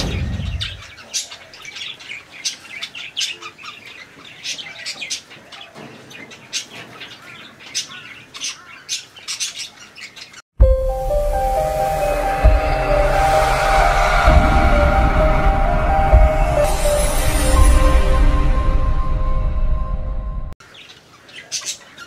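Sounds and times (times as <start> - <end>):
low whoosh: 10.6 - 20.6.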